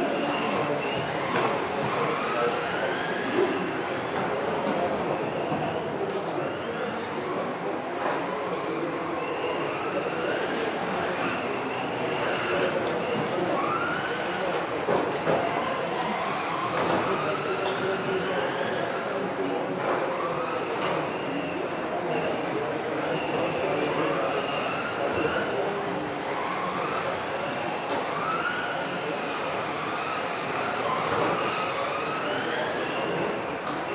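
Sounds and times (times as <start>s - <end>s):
electric motors whining: 0.0s - 33.9s.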